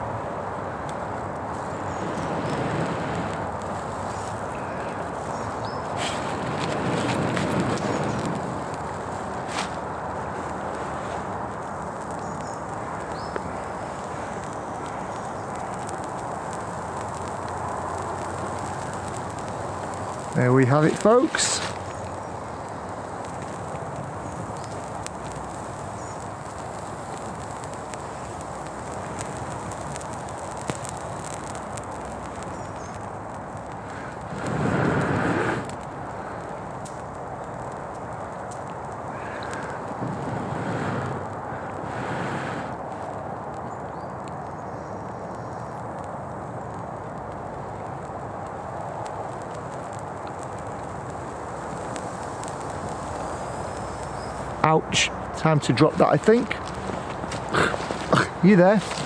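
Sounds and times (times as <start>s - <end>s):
tinder hissing and crackling: 0.0s - 59.0s
rush of air: 0.1s - 32.6s, 33.2s - 37.8s, 38.7s - 43.5s.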